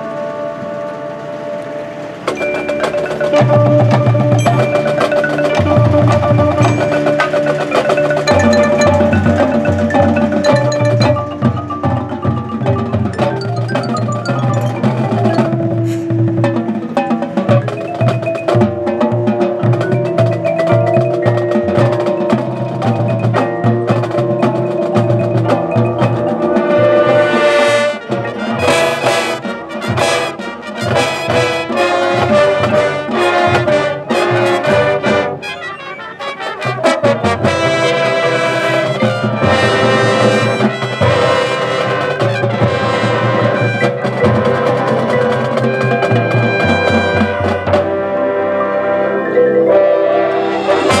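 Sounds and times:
drumline: 0.0 - 51.0
marching band sustained chord: 0.0 - 51.0
mallet percussion beat: 2.2 - 36.0, 36.6 - 48.4, 49.3 - 51.0.

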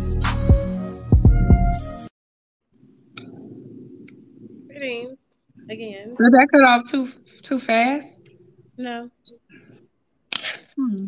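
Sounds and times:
video call line hum: 2.8 - 10.0
woman vocal sound: 4.7 - 6.4, 8.8 - 9.2.

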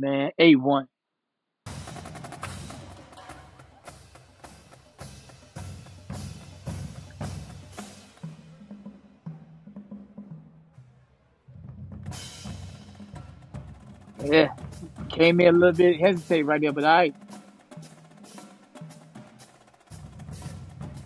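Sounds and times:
low pitched drums: 1.7 - 10.9, 11.5 - 21.0
snare drums: 1.7 - 11.0, 11.6 - 21.0.

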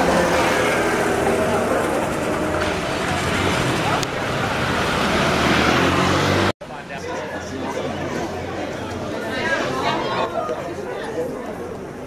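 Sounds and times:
motor scooter engine passing: 0.0 - 6.5
crowd chattering: 0.0 - 12.0.

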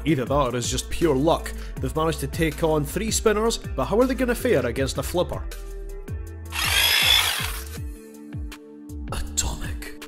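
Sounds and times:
drill-like transition effect: 6.5 - 7.8.

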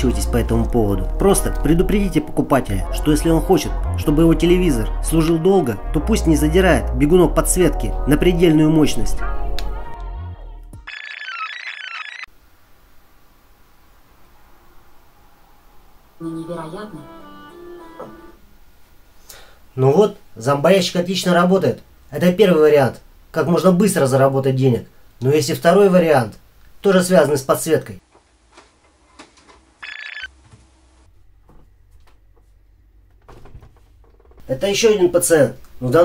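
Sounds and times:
faint room noise: 12.3 - 36.0.

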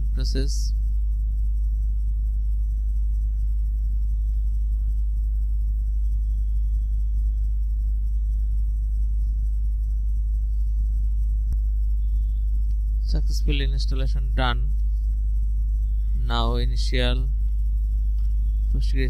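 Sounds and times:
low electrical hum: 0.0 - 19.0.

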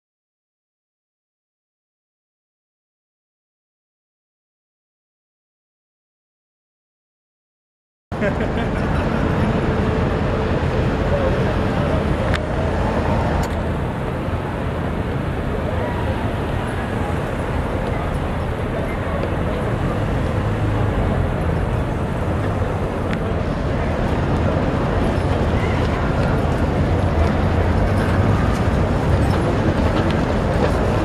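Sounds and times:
cars passing with road rumble: 8.1 - 31.0.

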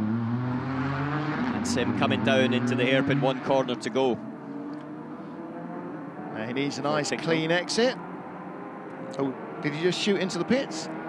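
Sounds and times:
distant race car accelerating: 0.0 - 11.0.

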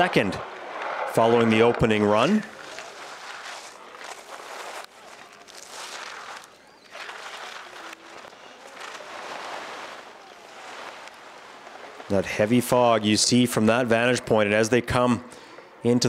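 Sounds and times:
skis scraping on snow: 0.0 - 13.9.

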